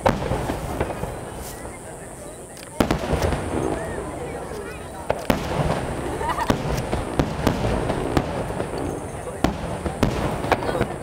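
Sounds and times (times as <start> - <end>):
firework shells booming: 0.0 - 11.0
rumble of firework bursts: 0.0 - 11.0.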